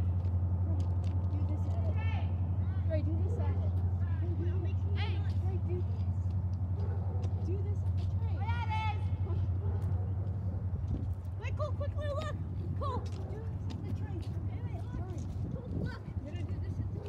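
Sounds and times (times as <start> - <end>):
low engine hum: 0.0 - 17.0.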